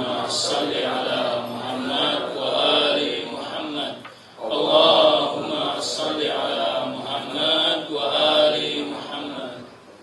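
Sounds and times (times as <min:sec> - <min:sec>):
man chanting melodically: 0:00.0 - 0:09.7.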